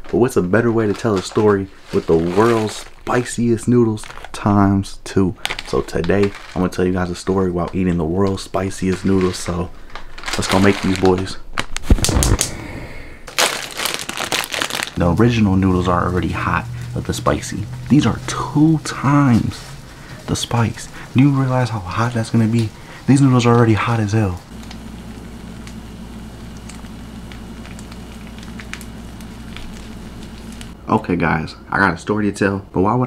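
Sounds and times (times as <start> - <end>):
dense crinkling crackling: 0.0 - 12.6, 13.3 - 30.8
noodles simmering in a pot: 13.9 - 30.8.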